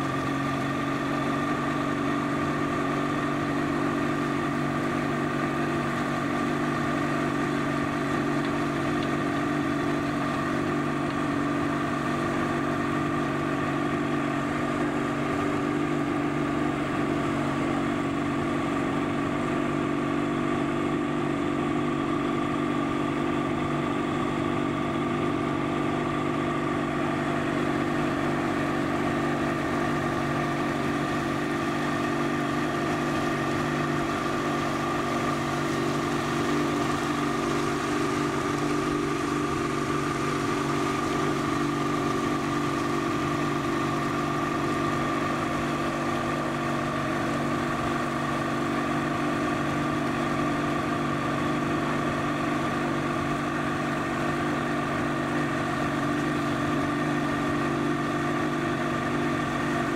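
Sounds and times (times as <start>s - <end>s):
outboard motor running: 0.0s - 59.9s.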